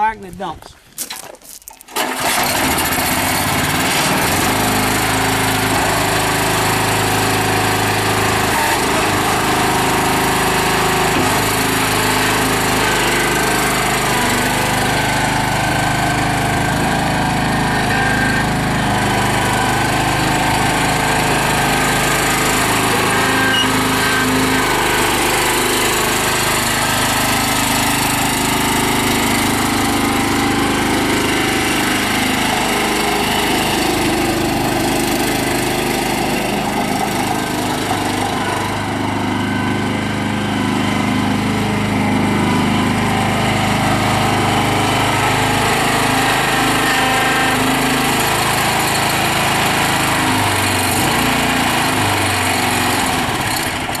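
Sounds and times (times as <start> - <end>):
single-cylinder engine running: 1.9 - 54.0.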